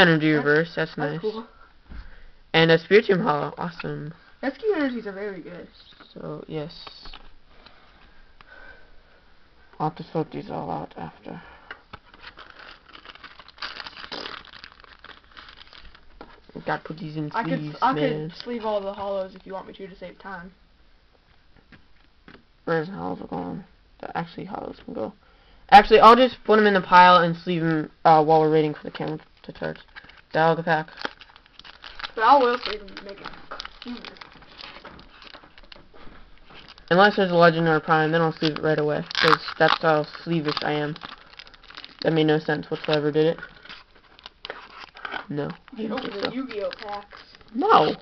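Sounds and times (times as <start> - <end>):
foil wrapper crinkling: 11.9 - 16.2, 29.0 - 48.0
trading cards rustling: 11.9 - 19.5, 28.8 - 48.0.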